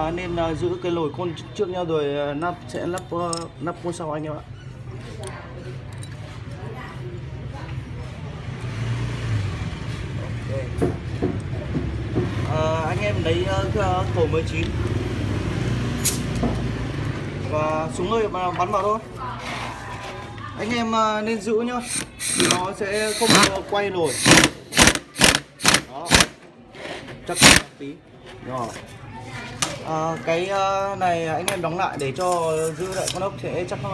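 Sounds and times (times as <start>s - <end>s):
impact wrench bursts: 21.8s - 26.5s, 27.3s - 27.8s.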